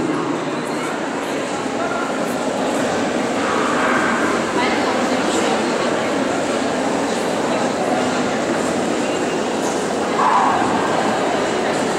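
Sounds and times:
murmur of busy indoor hall: 0:00.0 - 0:11.9.

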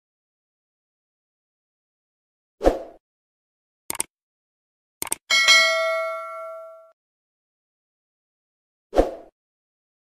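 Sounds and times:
quick clicks: 0:03.9 - 0:04.1, 0:05.0 - 0:05.2
bell-like ding: 0:05.3 - 0:07.0.

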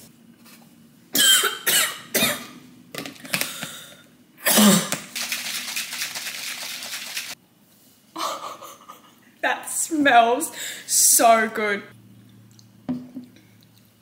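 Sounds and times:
woman coughing: 0:01.2 - 0:02.5, 0:04.4 - 0:04.9
plastic shaker bottle shaken: 0:05.1 - 0:07.4.

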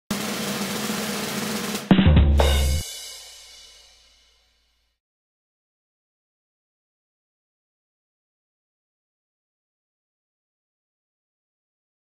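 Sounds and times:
snare drum roll: 0:00.1 - 0:04.3
loud hit with heavy bass: 0:01.9 - 0:04.1.

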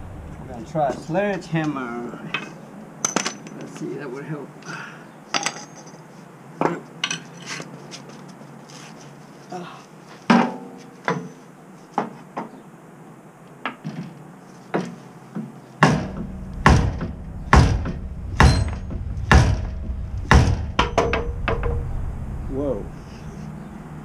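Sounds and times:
sledgehammer striking metal: 0:15.8 - 0:22.1.

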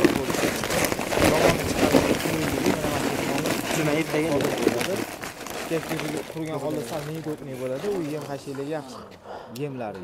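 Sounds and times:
people talking: 0:01.2 - 0:05.0, 0:05.7 - 0:10.0.

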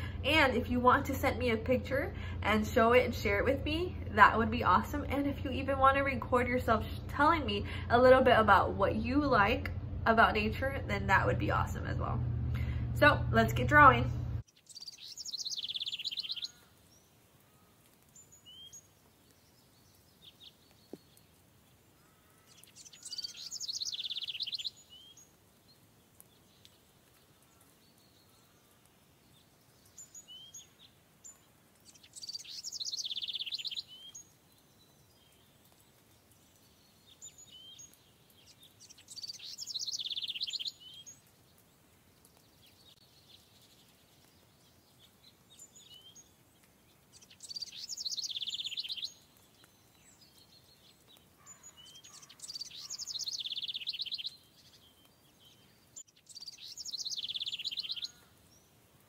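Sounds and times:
songbird trilling: 0:14.5 - 0:16.7, 0:22.0 - 0:25.3, 0:31.9 - 0:35.4, 0:37.1 - 0:41.2, 0:47.1 - 0:50.4, 0:51.4 - 0:58.3.

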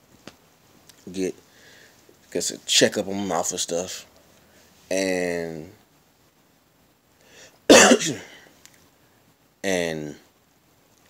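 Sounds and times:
man coughing: 0:07.7 - 0:08.4.

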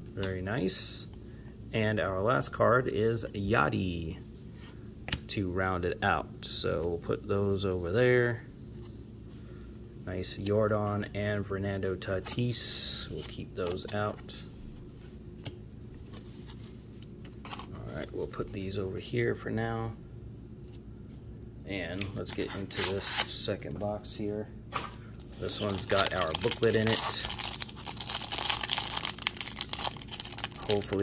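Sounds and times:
low room hum: 0:00.0 - 0:31.0
cellophane wrap crinkling: 0:24.8 - 0:31.0.

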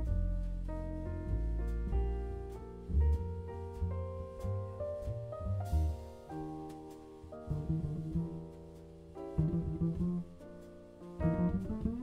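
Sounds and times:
double bass notes: 0:00.0 - 0:12.0.

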